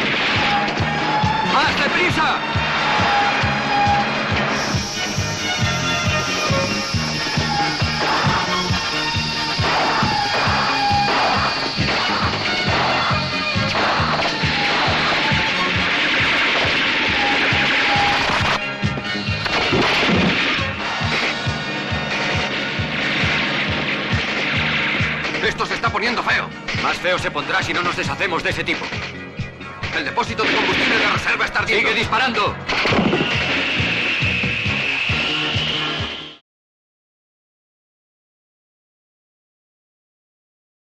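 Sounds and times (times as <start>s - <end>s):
soundtrack music with steady beat: 0.0s - 30.5s.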